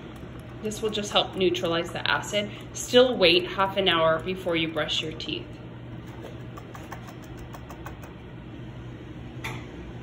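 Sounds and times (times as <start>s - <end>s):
low background hum: 0.0s - 10.0s.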